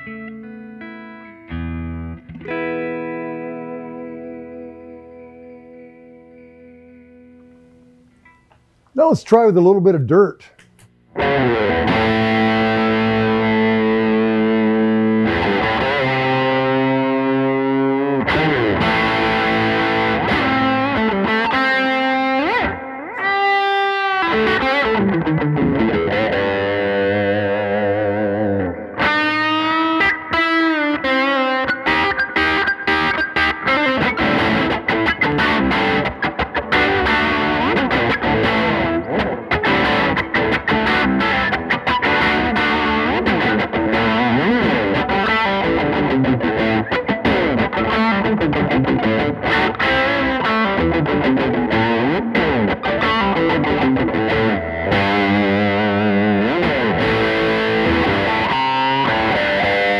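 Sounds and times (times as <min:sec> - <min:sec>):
overdriven electric guitar: 0:00.0 - 0:08.7, 0:10.6 - 0:59.9.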